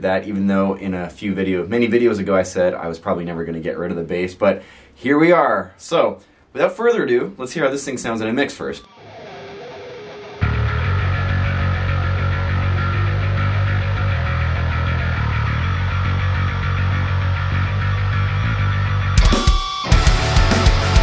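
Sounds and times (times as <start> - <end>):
distorted electric guitar: 8.8 - 21.0
electric bass: 10.4 - 21.0.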